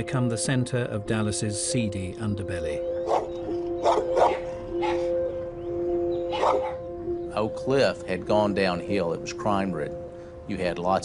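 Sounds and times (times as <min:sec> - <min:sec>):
droning music: 0:00.0 - 0:11.0
dog barking: 0:03.0 - 0:05.1, 0:06.3 - 0:06.8.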